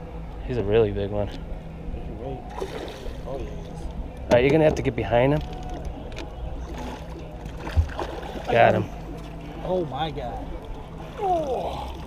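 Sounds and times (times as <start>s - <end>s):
water rumbling around boat: 0.0s - 12.0s
dull thump against boat: 7.6s - 8.3s.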